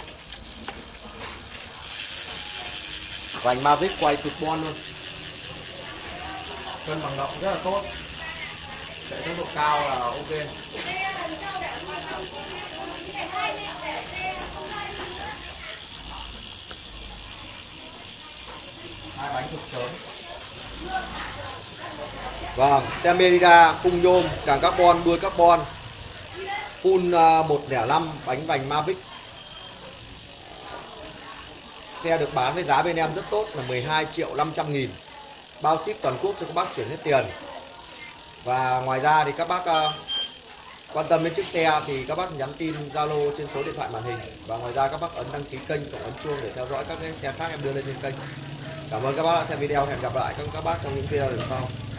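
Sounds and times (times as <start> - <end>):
bicycle wheel whirring: 0.0 - 51.9.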